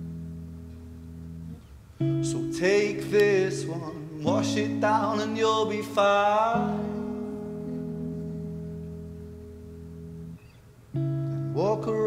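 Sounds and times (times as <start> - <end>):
electric guitar chord ringing: 0.0 - 12.0
person singing: 2.1 - 8.6, 11.4 - 12.0.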